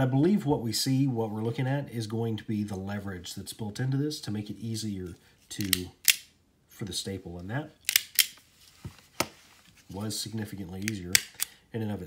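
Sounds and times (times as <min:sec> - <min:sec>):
stapler clicking: 0:07.9 - 0:08.4.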